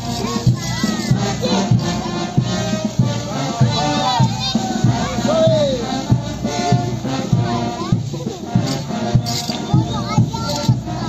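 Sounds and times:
band music with drum beat: 0.0 - 11.0
voices calling out: 0.0 - 11.0
rattles clacking: 8.6 - 9.7.

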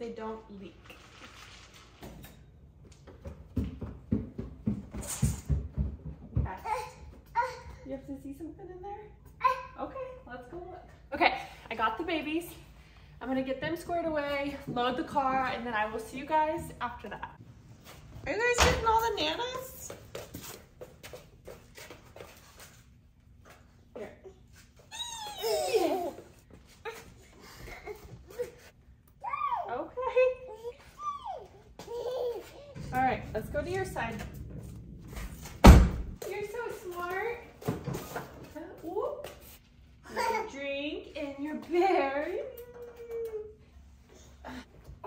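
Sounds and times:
footsteps climbing stairs: 2.8 - 7.3
toddler squealing: 24.9 - 25.7.

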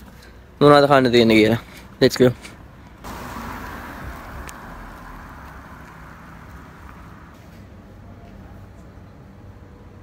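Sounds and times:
low traffic rumble: 0.0 - 10.0
car driving past: 3.0 - 7.5.

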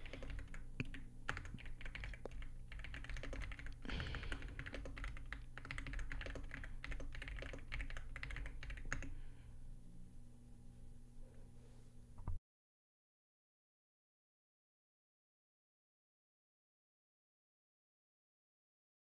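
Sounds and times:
computer keyboard typing: 0.0 - 9.1.

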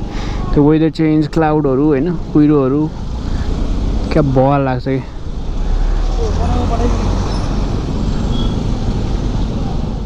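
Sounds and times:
hum of vehicles: 0.0 - 10.0.

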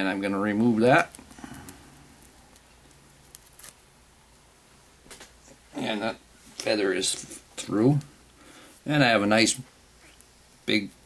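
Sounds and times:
light ticks of fibres stripping: 1.1 - 3.8.

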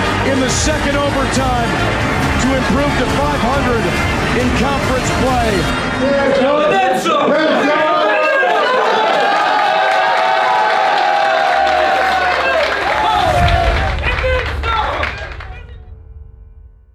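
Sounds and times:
deep bass music: 0.0 - 6.3, 12.8 - 16.9
men shouting and cheering: 0.0 - 15.4
people clapping: 8.2 - 15.7.

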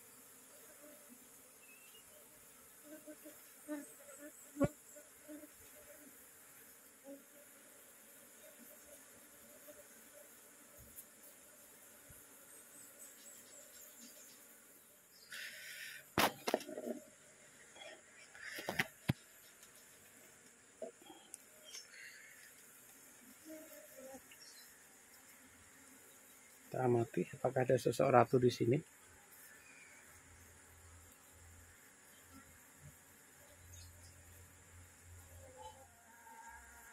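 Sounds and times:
bees humming: 0.0 - 27.0.

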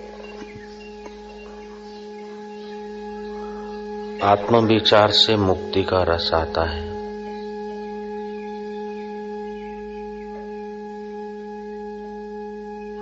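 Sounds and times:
low musical drone: 0.0 - 13.0.

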